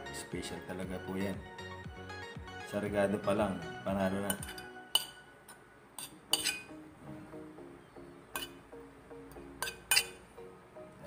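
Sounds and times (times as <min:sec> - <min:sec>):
faint slow background music: 0:00.0 - 0:11.0
plate clinking on a metal bowl: 0:04.2 - 0:05.2, 0:06.0 - 0:06.7, 0:08.4 - 0:08.6, 0:09.6 - 0:10.2.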